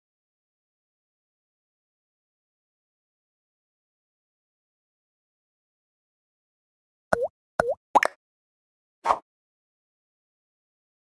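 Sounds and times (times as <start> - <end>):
cartoon bubbly bloops: 7.2 - 8.2.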